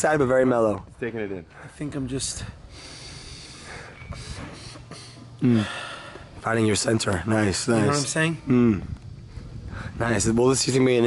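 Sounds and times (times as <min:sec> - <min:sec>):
steady background hiss: 0:00.0 - 0:11.0
man breathing slowly: 0:02.4 - 0:06.4, 0:09.1 - 0:10.0.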